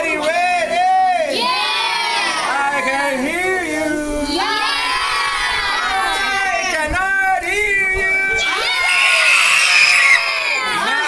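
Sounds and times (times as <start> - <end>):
children shouting and cheering: 0.7 - 3.1, 4.2 - 11.0.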